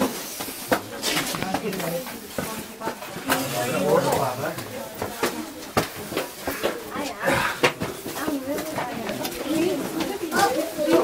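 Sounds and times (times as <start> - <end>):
people talking indistinctly: 0.6 - 11.0.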